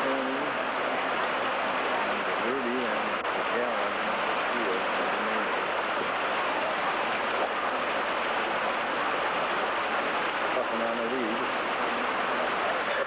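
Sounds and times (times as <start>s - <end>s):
faint voices: 0.0s - 0.8s, 1.6s - 13.0s
steady outdoor rushing noise: 0.0s - 13.0s.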